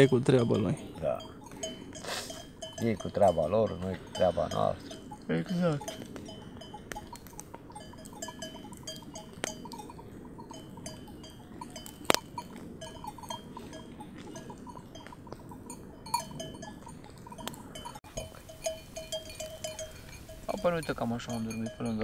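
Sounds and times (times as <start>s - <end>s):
campfire crackling: 0.0s - 22.0s
sheep bells clinking: 0.0s - 22.0s.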